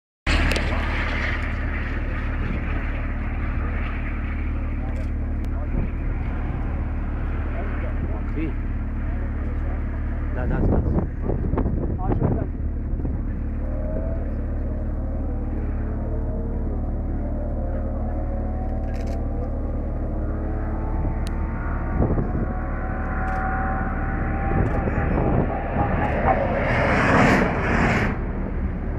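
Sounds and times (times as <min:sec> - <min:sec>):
faint voices: 0:00.3 - 0:28.7
cars racing past: 0:00.3 - 0:28.9
vehicle rumble and hum: 0:00.3 - 0:28.9.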